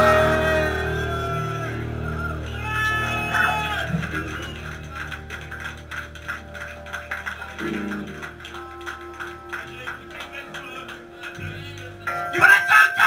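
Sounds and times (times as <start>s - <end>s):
electric guitar and bass chord: 0.0s - 12.3s.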